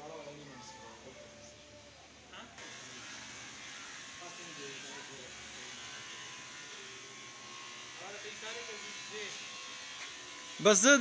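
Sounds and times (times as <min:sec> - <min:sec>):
distant voices talking: 0:00.0 - 0:11.0.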